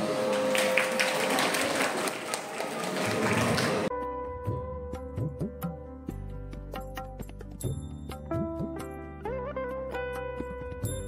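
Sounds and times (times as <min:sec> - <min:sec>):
audience applauding: 0:00.0 - 0:03.9.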